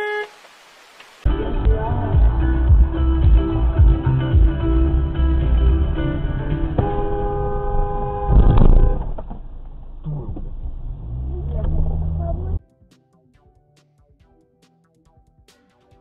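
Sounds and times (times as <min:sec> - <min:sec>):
car engine and road noise: 0:00.1 - 0:12.6
music playing: 0:01.2 - 0:06.8, 0:12.6 - 0:16.0.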